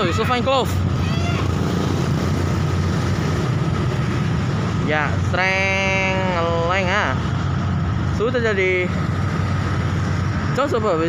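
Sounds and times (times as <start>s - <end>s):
cars running: 0.0s - 11.0s
engine and road noise rumble: 0.0s - 11.0s
motorcycles running: 0.0s - 11.0s.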